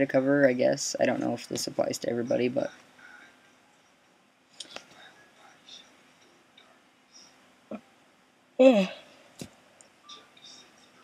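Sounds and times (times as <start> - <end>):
faint whispering: 4.6 - 7.8, 10.0 - 11.0.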